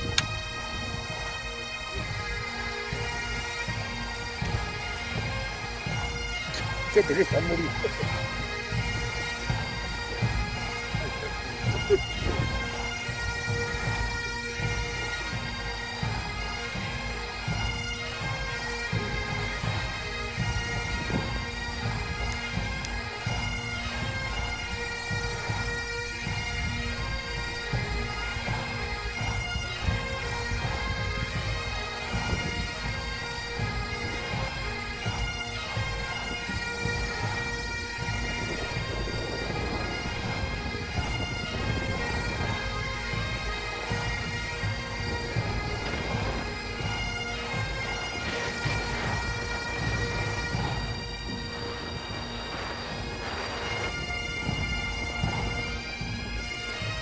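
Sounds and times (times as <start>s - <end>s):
bagpipe tune with drones: 0.0s - 57.0s.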